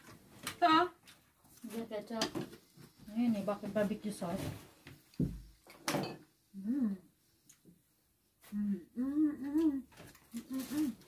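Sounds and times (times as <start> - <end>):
voice humming: 6.6 - 7.1, 8.4 - 11.0.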